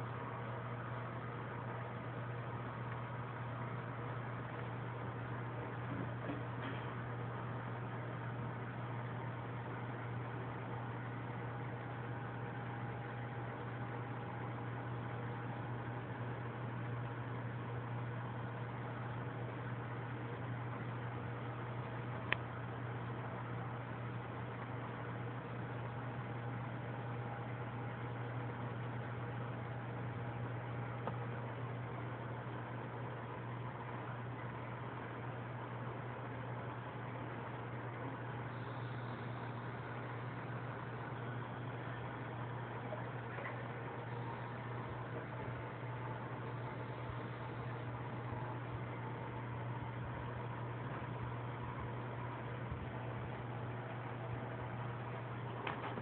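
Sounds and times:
aquarium pump hum: 0.0 - 56.0
constant hiss: 0.0 - 56.0.

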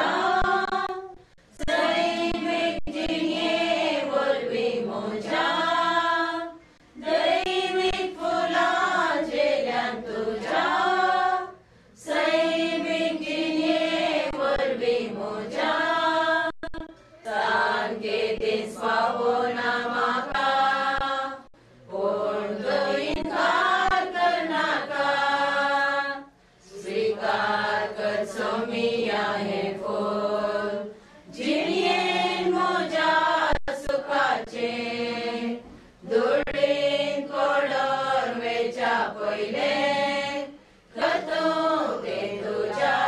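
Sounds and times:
group singing a hymn: 0.0 - 43.0.

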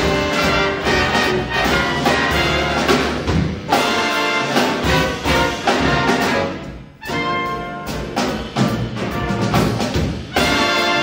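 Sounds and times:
jazz big band playing: 0.0 - 11.0.

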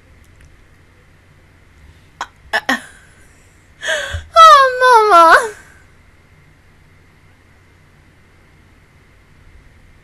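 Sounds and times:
woman laughing: 2.6 - 3.0, 3.8 - 5.7
woman breathing: 3.0 - 4.4.

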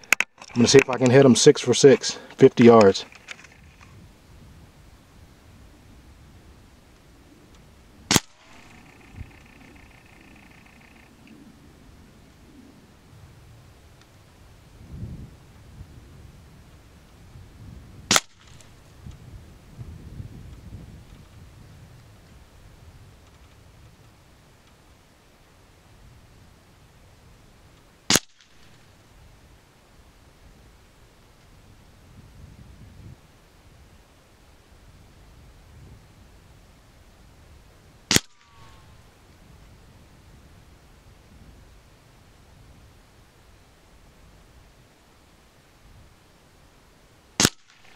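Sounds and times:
air rifle shot: 8.1 - 11.0, 18.1 - 18.6, 28.1 - 28.7, 38.1 - 38.8, 47.4 - 47.9.

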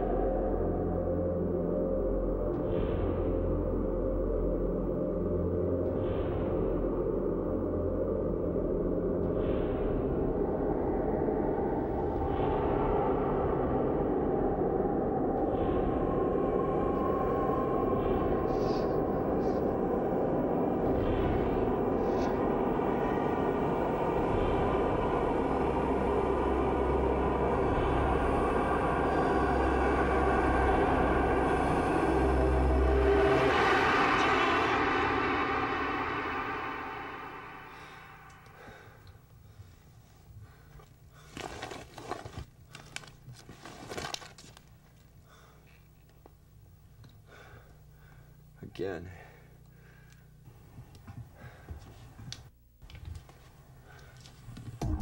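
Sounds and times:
deep rumble: 0.0 - 39.8, 53.7 - 55.0
dark droning horror score: 0.0 - 43.1, 43.9 - 55.0.

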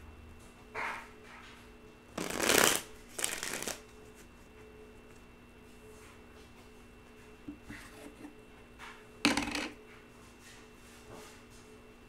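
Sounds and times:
cards shuffled by hand: 2.2 - 3.8.

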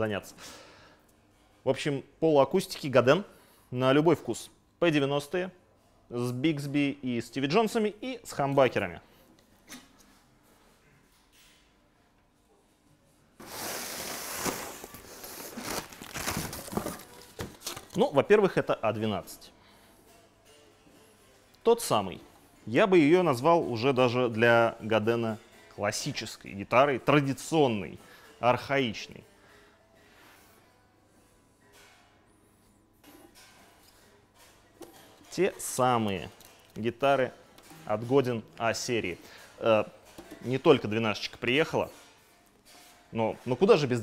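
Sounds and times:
packaging rustling and crinkling: 13.4 - 18.2.

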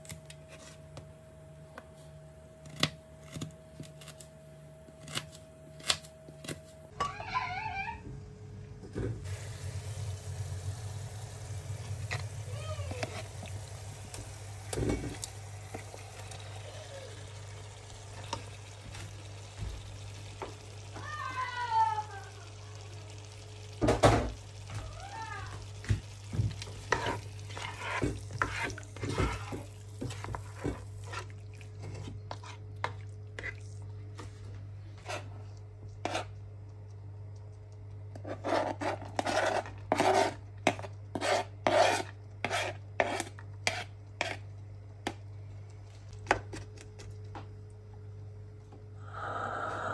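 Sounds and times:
steady low hum: 8.0 - 49.9
chicken sizzling in oil: 9.2 - 31.5
knife scraping plastic cutting board: 38.2 - 44.4.

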